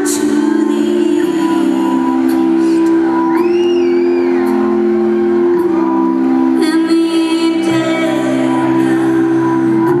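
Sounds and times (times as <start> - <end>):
person singing: 0.0 - 3.2, 6.5 - 10.0
keyboard sustained chords: 0.0 - 10.0.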